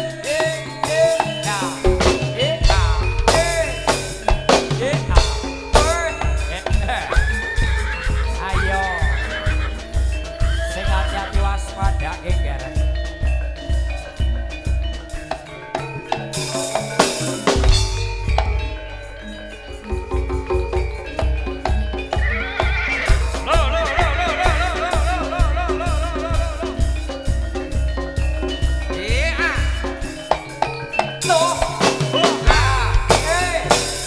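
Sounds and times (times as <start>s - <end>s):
heavy bass drum beat: 0.0s - 34.0s
high wailing melody: 0.0s - 34.0s
metallophone and gong notes: 0.0s - 34.0s.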